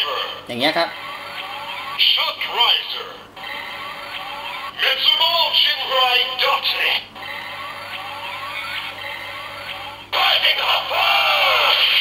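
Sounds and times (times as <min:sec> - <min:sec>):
recorded voice call over music: 0:02.0 - 0:03.0, 0:04.8 - 0:07.1, 0:10.1 - 0:12.0.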